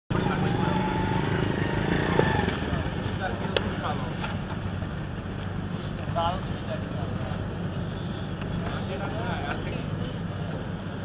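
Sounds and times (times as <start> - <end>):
distant voices: 0.1 - 11.0.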